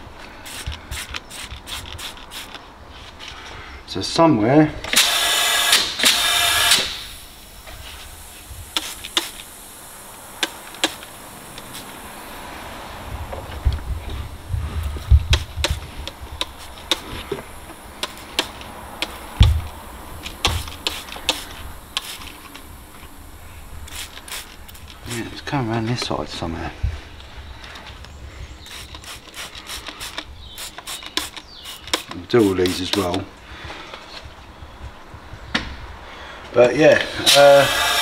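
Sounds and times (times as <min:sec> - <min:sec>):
loud air hiss: 0:00.4 - 0:02.5, 0:04.9 - 0:13.2, 0:14.2 - 0:25.6, 0:28.4 - 0:33.0, 0:37.1 - 0:38.0
spray bottle clicks: 0:08.7 - 0:09.5, 0:10.4 - 0:11.9, 0:18.0 - 0:19.2, 0:28.7 - 0:33.2.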